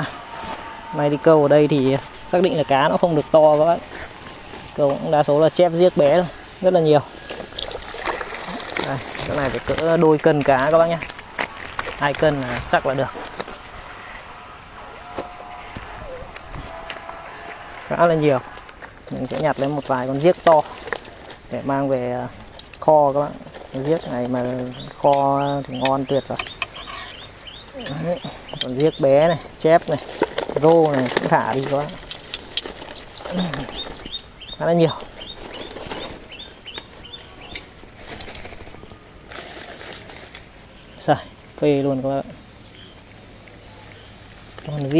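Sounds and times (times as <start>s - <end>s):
fishing net rustling: 1.8s - 28.5s, 29.2s - 40.8s
wet net rustling and splashing: 6.3s - 14.5s
small bird chirping: 23.9s - 29.1s, 32.8s - 37.7s.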